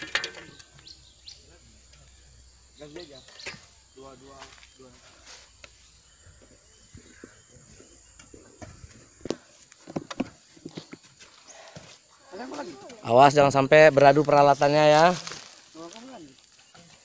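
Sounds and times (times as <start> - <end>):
hoes chopping and dragging soil: 0.0 - 2.1, 7.1 - 17.0.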